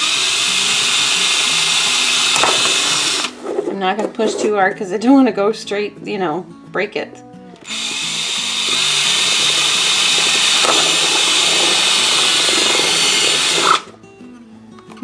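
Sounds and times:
cordless drill boring through plastic: 0:00.0 - 0:03.4, 0:07.6 - 0:13.9.

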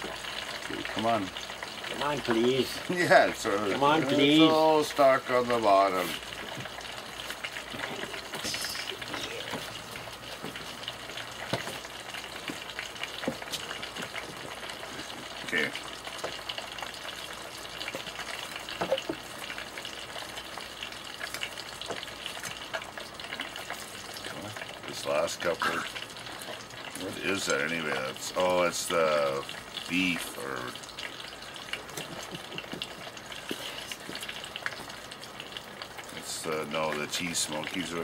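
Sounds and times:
food deep-frying in oil: 0:00.0 - 0:38.0.

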